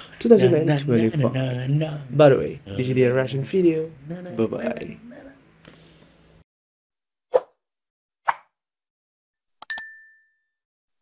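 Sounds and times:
brief ringing ding: 9.6 - 10.6.

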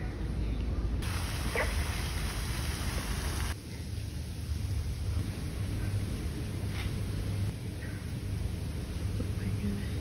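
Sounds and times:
pond fountain splashing: 1.0 - 5.7.

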